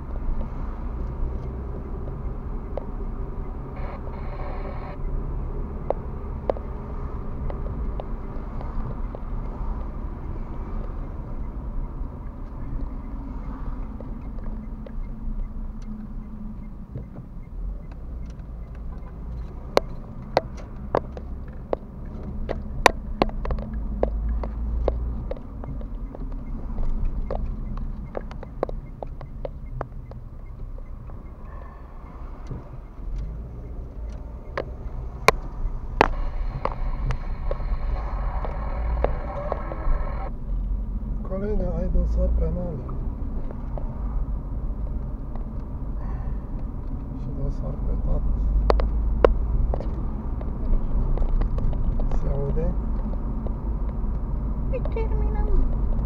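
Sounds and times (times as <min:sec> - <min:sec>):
engine and tyres humming: 0:00.0 - 0:56.0
sharp clicks and knocks: 0:13.8 - 0:40.3, 0:48.5 - 0:56.0.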